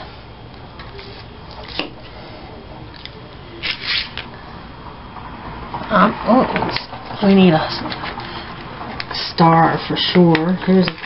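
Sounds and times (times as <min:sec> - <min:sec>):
paper sticker sheet rustling: 0:03.6 - 0:04.3.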